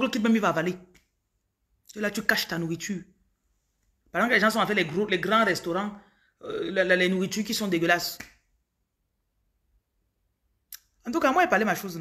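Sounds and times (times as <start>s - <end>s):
person speaking: 0.0s - 8.5s, 10.7s - 12.0s.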